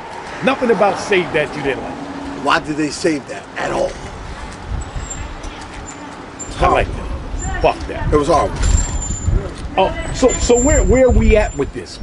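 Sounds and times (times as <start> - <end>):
passing vehicles rumbling: 0.0 - 12.0
steady background noise: 0.0 - 12.0.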